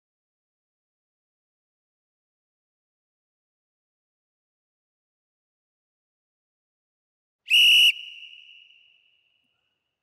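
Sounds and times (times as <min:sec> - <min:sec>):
short whistle blast: 0:07.5 - 0:09.3.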